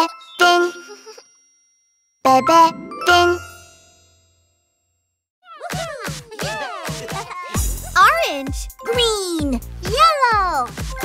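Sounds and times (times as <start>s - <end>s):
bell-like chime notes: 0.1s - 4.9s.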